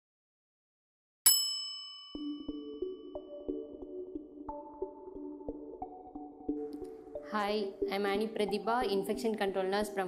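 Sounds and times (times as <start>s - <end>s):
bell-like ding: 1.3s - 2.9s
light background melody: 2.1s - 10.0s.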